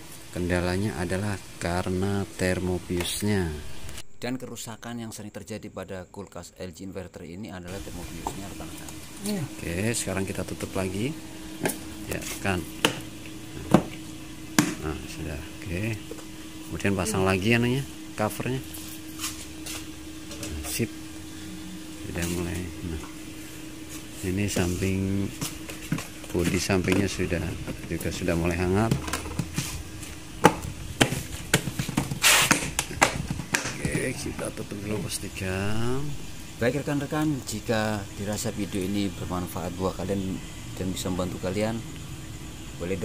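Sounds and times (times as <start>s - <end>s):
faint steady hum: 0.0s - 43.0s
short rustling hiss: 32.2s - 32.5s.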